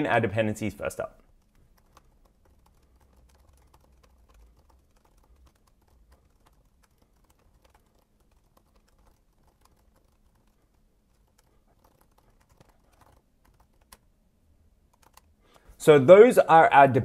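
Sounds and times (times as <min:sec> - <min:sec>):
typing on computer keyboard: 0:01.3 - 0:14.0, 0:14.9 - 0:15.3.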